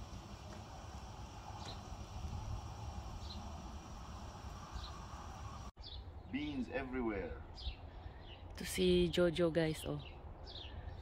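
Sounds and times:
faint steady high hiss: 0:00.0 - 0:07.1
bird chirp: 0:01.5 - 0:01.9, 0:03.1 - 0:03.6, 0:04.6 - 0:11.0.

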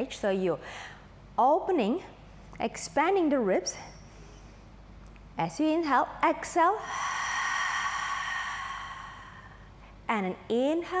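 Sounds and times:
woman exhaling through mouth: 0:06.6 - 0:09.8.

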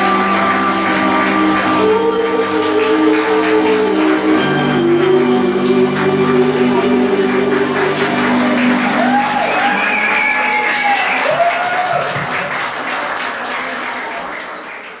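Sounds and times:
held music chord: 0:00.0 - 0:10.0
audience applauding: 0:00.0 - 0:15.0
crowd cheering: 0:00.0 - 0:15.0.

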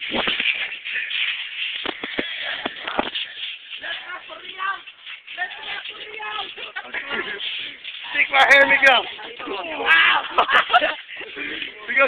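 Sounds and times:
thumps: 0:00.0 - 0:00.8
people scuffling on floor: 0:00.0 - 0:12.0.

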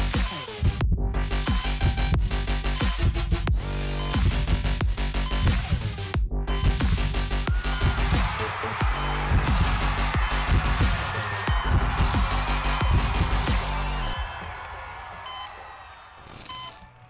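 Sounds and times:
music with heavy fast bass beat: 0:00.0 - 0:14.5.

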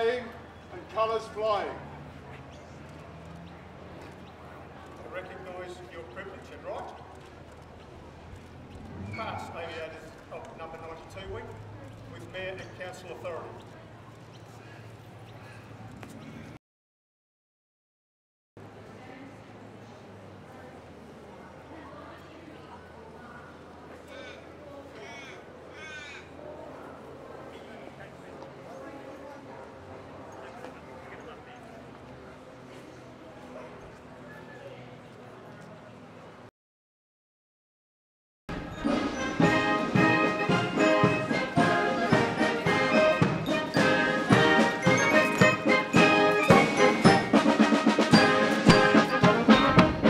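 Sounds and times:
faint distant voices: 0:00.0 - 0:16.6, 0:18.6 - 0:36.5
crow cawing: 0:25.0 - 0:26.3
brass band playing a march: 0:38.8 - 0:50.0
steady drum beat: 0:38.8 - 0:50.0.

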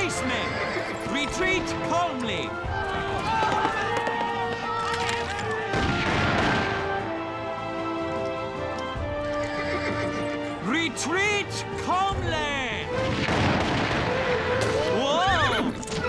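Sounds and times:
horse whinnying: 0:00.0 - 0:01.4, 0:09.3 - 0:10.5
background music with held notes: 0:00.0 - 0:16.0.

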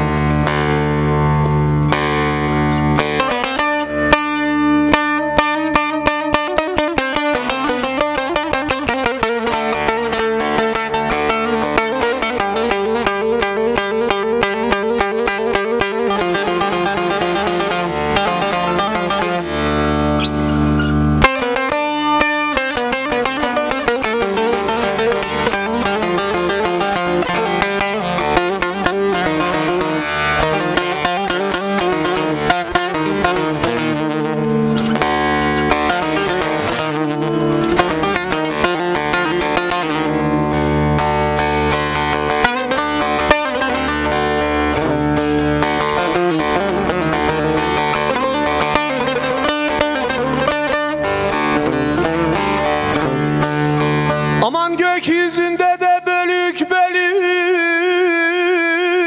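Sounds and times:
plucked long-necked lute: 0:00.0 - 0:59.0.

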